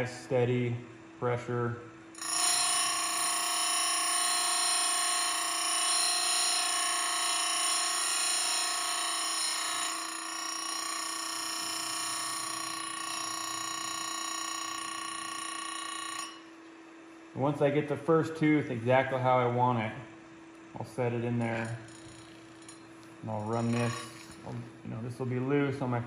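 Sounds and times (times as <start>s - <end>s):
grinder wheel whining: 2.2s - 16.5s, 21.4s - 24.6s.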